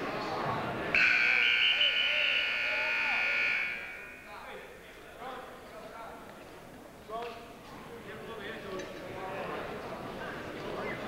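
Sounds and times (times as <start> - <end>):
timing buzzer blast: 1.0 - 4.3.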